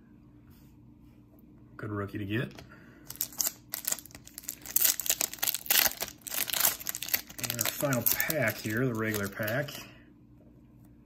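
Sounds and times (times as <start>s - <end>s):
foil wrapper crinkling and tearing: 3.1s - 9.9s.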